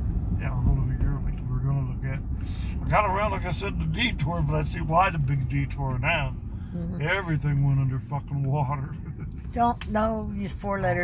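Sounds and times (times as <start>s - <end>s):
car cabin rumble: 0.0s - 11.0s.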